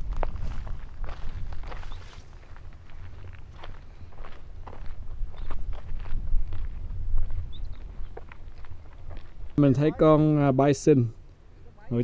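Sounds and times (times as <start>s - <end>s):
footsteps on dirt road: 0.0s - 10.2s
steady low rumble: 0.0s - 11.7s.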